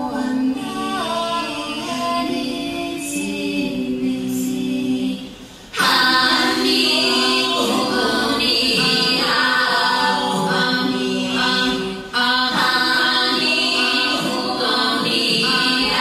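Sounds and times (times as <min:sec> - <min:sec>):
unaccompanied choir singing: 0:00.0 - 0:16.0.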